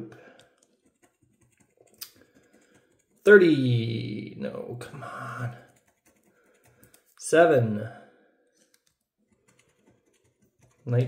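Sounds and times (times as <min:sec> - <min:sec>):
coin scratching lottery ticket: 0:05.6 - 0:07.1, 0:09.3 - 0:11.0.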